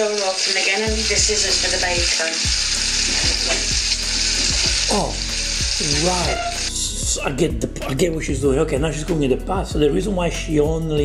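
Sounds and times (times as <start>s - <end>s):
pasta sizzling in cream: 0.0s - 6.8s.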